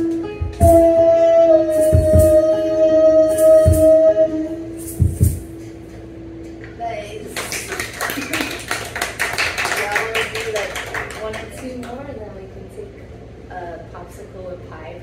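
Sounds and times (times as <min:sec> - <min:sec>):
band chord: 0:00.0 - 0:06.5
low thumps: 0:05.0 - 0:05.5
audience applauding: 0:07.4 - 0:12.0.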